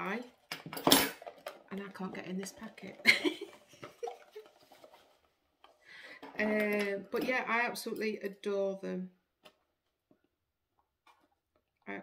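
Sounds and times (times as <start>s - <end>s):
woman laughing: 3.0s - 4.6s.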